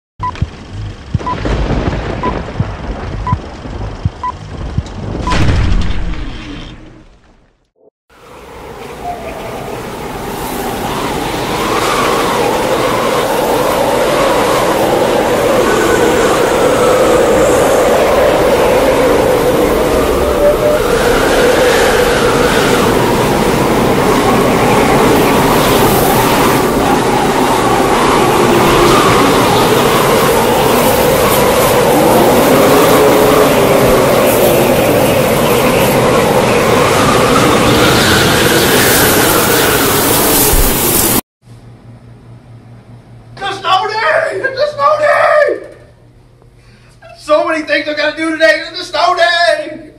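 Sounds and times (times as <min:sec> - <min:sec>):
car engine and road noise: 0:00.2 - 0:05.5.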